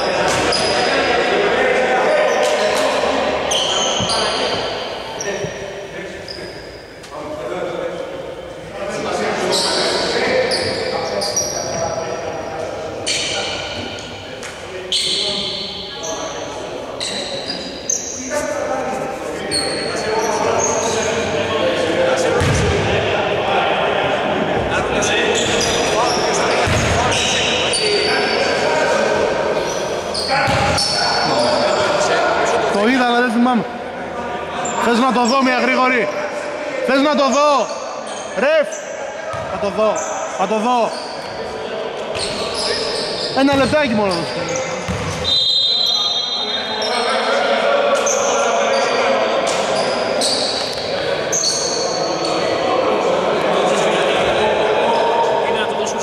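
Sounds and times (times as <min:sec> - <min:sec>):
voices chattering and calling out: 0:00.0 - 0:56.0
basketball bouncing on wooden court: 0:22.4 - 0:22.8, 0:43.5 - 0:43.8, 0:44.9 - 0:45.2.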